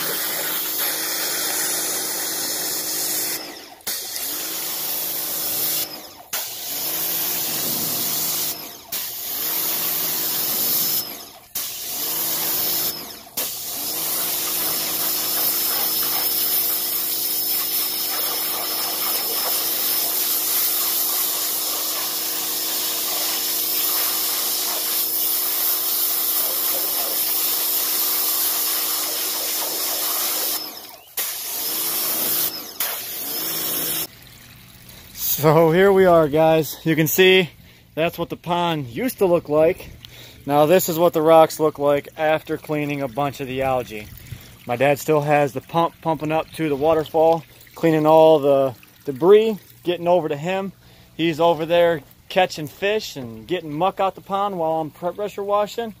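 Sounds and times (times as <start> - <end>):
pressure washer spraying: 0.0 - 34.1.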